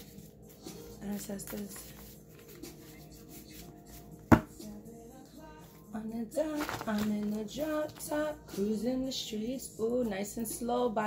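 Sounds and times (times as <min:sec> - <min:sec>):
faint music: 0:00.0 - 0:11.0
cards tapped on table: 0:04.3 - 0:04.6.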